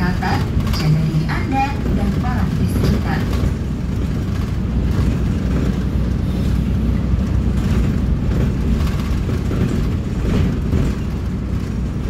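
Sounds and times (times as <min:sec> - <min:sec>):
bus engine and tyres rumbling: 0:00.0 - 0:12.0.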